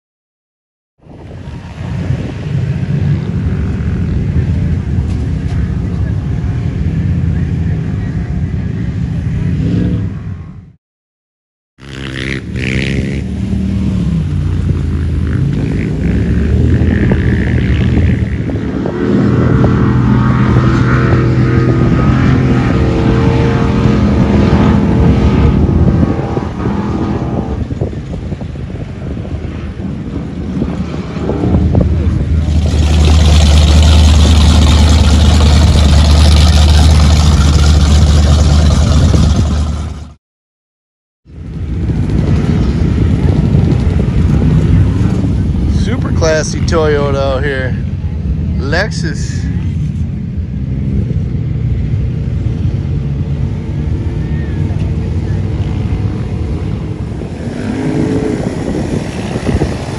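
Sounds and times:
off-road engines revving: 11.8 - 28.0, 30.8 - 40.2, 50.6 - 59.9.

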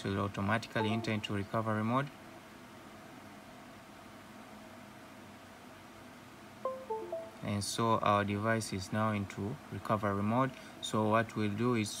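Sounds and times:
faint room hiss: 0.0 - 12.0
falling computer chime: 0.8 - 1.4, 6.7 - 7.6.

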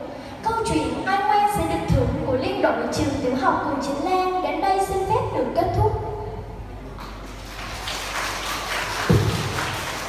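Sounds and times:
audience applause: 7.3 - 10.0.

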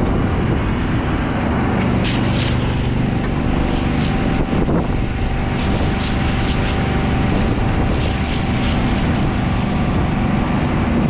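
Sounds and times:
thin steady whine: 0.0 - 11.0
truck engine and pump running: 0.0 - 11.0
wind on microphone: 0.0 - 11.0
water stream spraying: 1.5 - 11.0.

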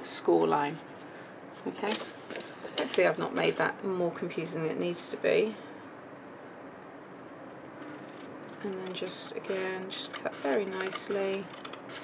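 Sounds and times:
scissors cutting cardstock: 7.8 - 12.0.

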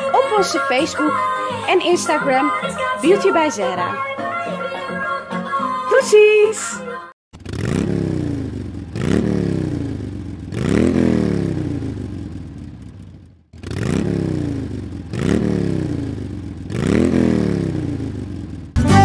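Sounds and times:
scooter engine revving: 7.3 - 18.8.

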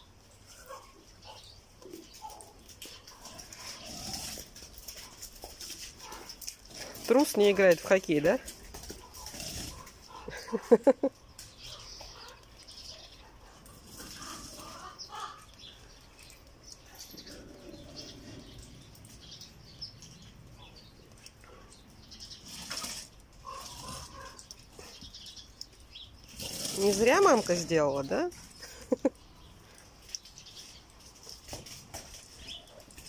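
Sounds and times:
animal playing with a toy: 1.8 - 33.0.

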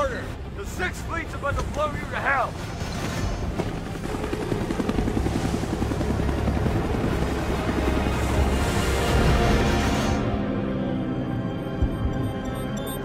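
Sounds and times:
fast pulsing music: 11.4 - 13.0.

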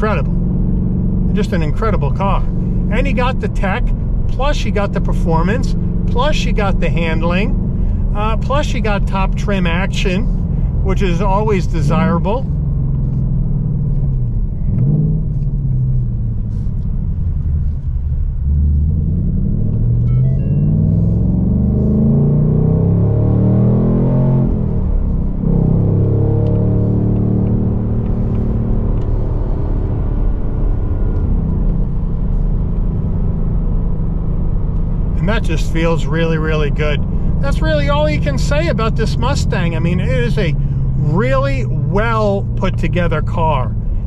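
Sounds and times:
car engine accelerating: 0.0 - 44.0.

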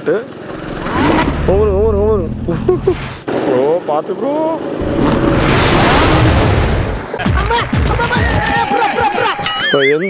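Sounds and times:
go-kart engine: 0.0 - 5.6
tyres skidding on asphalt: 0.2 - 7.2
falling booming tones effect: 4.8 - 7.2.

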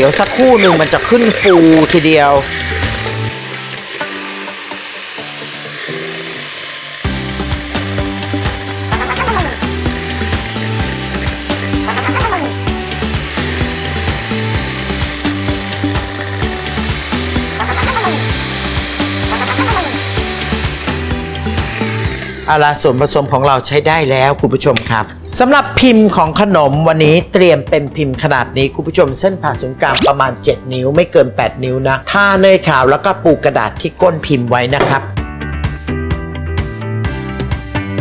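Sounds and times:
electric hand mixer whirring: 0.0 - 23.4
background music with a beat: 34.8 - 38.0.

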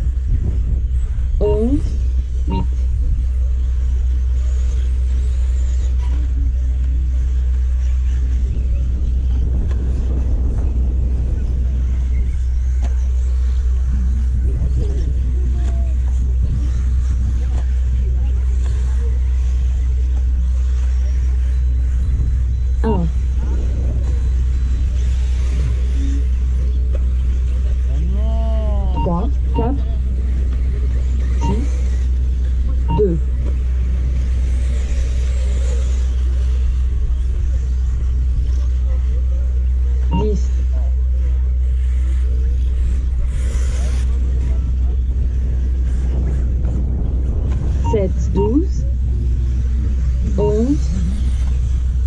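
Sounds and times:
electric rc buggies racing: 0.0 - 52.0
faint voices: 0.0 - 52.0
steady low rumble: 0.0 - 52.0.

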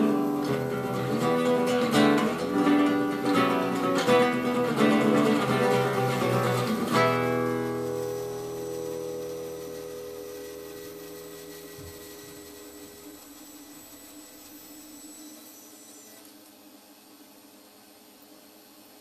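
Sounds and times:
guitar chord ringing: 0.0 - 13.0
faint hiss: 0.0 - 19.0.

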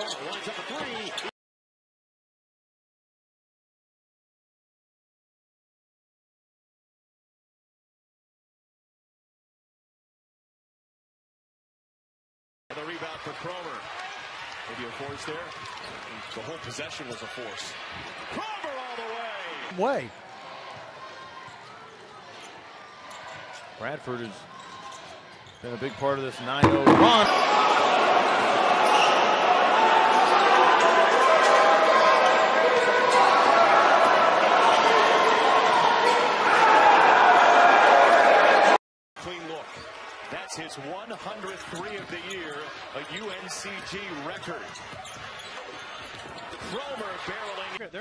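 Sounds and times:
arena crowd noise: 0.0 - 1.3, 12.7 - 48.0
basketball game sounds: 0.0 - 1.3, 12.9 - 47.8
basketball bouncing on hardwood: 26.6 - 27.3.

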